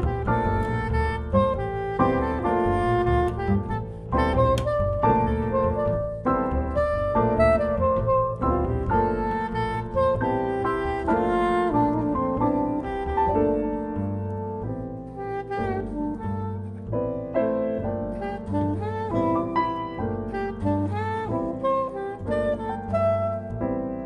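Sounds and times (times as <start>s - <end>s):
double bass: 0.0s - 24.0s
soprano saxophone melody: 0.0s - 24.0s.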